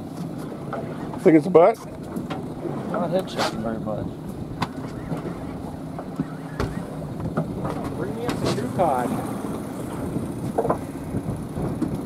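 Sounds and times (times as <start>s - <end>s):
boat engine idling: 0.0s - 12.0s
wind noise on microphone: 6.6s - 12.0s.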